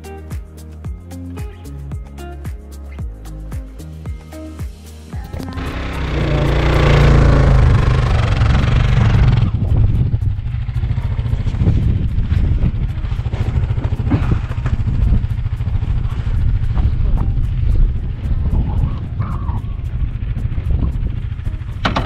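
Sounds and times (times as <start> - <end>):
motorcycle engine running: 5.2 - 22.0
loud rushing noise: 5.3 - 19.1.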